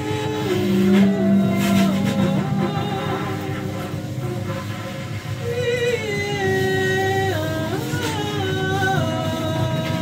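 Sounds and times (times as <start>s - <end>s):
held instrument notes: 0.0s - 5.9s
strong low held tone: 0.0s - 6.5s.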